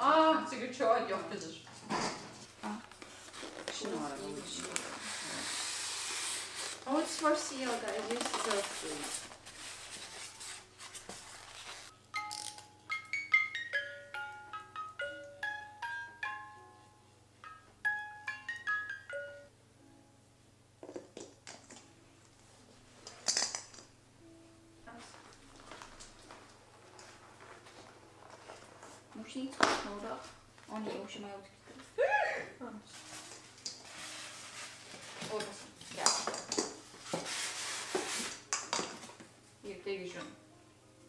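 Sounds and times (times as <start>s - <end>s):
music box melody: 11.9s - 19.5s.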